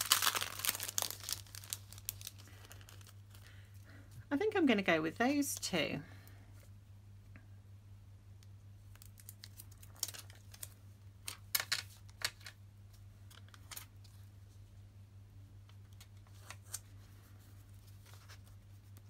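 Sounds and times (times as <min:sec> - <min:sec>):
stickers peeling crackly rustles: 0:00.0 - 0:03.6, 0:08.8 - 0:12.6
faint low hum: 0:00.0 - 0:19.0.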